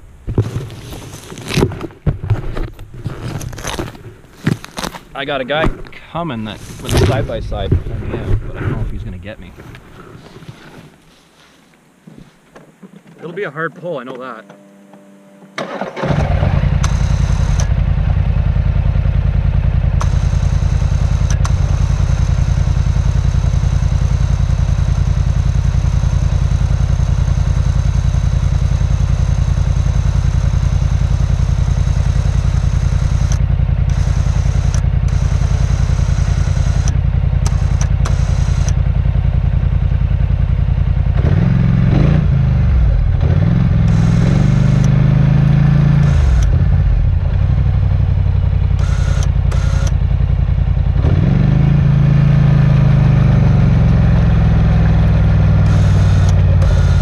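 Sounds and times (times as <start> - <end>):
atv engine starting and running: 0.0 - 9.4, 13.2 - 57.0.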